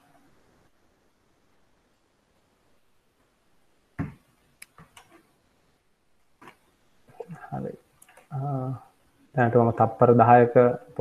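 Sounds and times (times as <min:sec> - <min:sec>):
computer mouse clicks: 0:04.6 - 0:05.3, 0:08.0 - 0:08.3.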